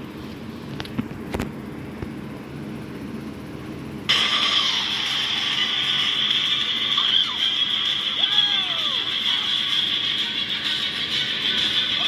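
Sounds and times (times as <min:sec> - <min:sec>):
film soundtrack through small speaker: 0:04.1 - 0:12.0.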